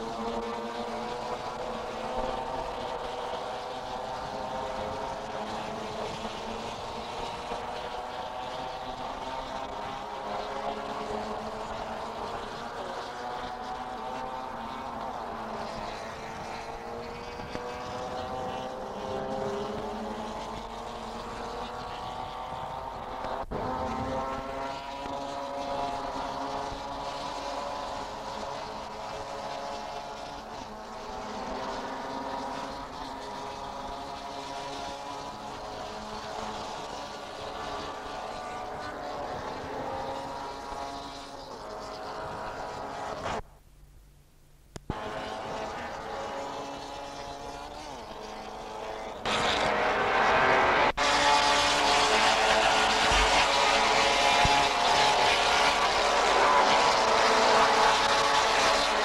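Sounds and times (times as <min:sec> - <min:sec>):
racing car engines droning: 0:00.0 - 0:59.0.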